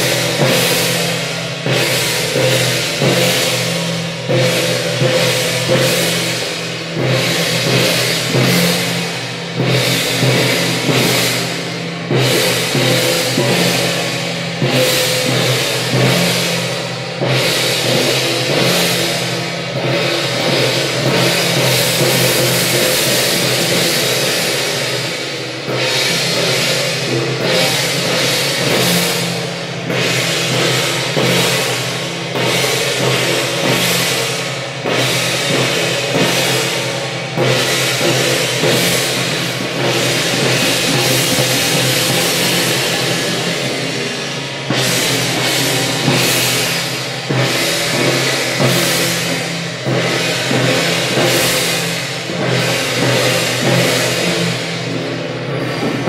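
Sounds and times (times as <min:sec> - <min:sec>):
brass cymbals clashing: 0:00.0 - 0:56.0
drums beating: 0:00.0 - 0:56.0.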